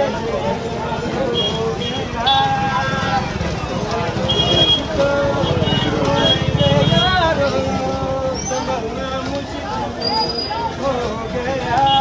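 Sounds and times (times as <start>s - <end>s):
crowd voices: 0.0s - 12.0s
motor scooter engine running: 1.4s - 8.4s.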